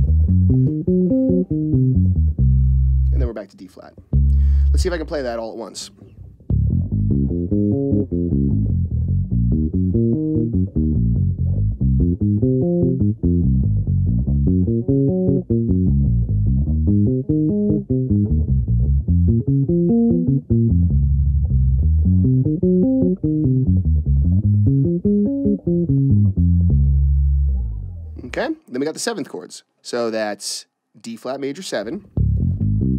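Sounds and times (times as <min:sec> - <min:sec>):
electric bass plucked arpeggios: 0:00.0 - 0:28.5, 0:32.1 - 0:32.9.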